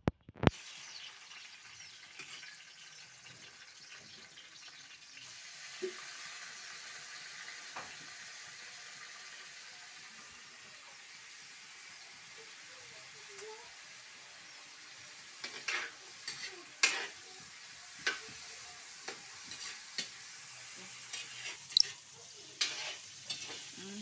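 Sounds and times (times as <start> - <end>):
food sizzling in a wok: 0.4 - 24.0.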